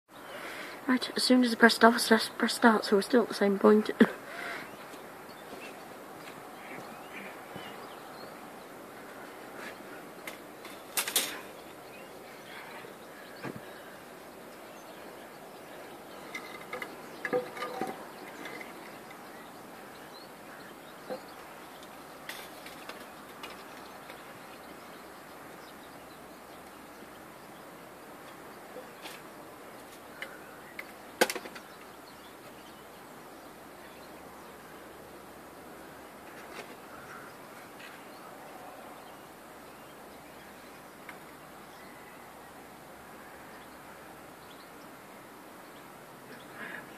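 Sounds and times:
faint outdoor background: 0:00.1 - 0:46.9
knocks and clatters of objects: 0:10.2 - 0:11.5, 0:16.3 - 0:19.2, 0:21.1 - 0:24.2, 0:29.8 - 0:31.7.

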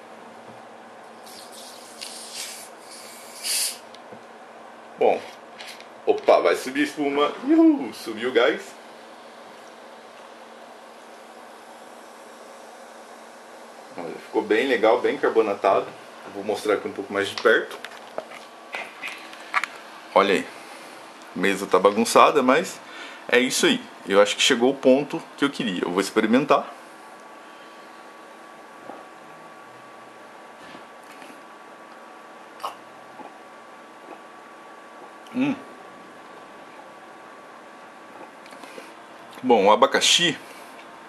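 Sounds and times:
gas hissing from bottle: 0:01.2 - 0:04.0.

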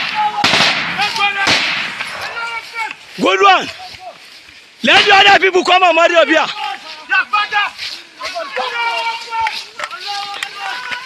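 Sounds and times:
gunshots with echo: 0:00.0 - 0:02.3
men shouting: 0:00.0 - 0:11.0.

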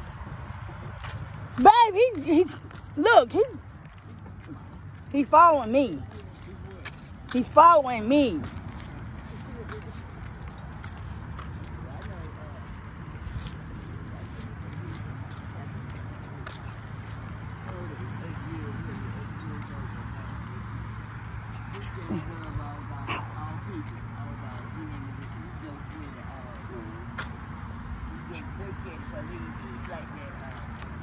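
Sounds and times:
distant indistinct voices: 0:00.0 - 0:31.0.

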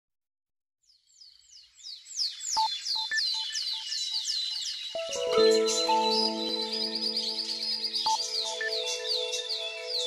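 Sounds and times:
bird chirps sliding downward: 0:04.9 - 0:10.0.

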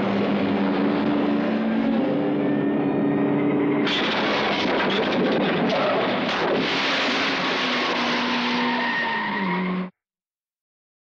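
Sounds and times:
car engine: 0:00.0 - 0:09.9.

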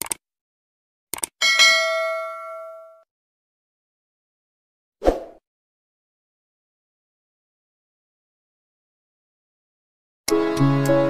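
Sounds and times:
notification bell ding: 0:01.4 - 0:03.0.

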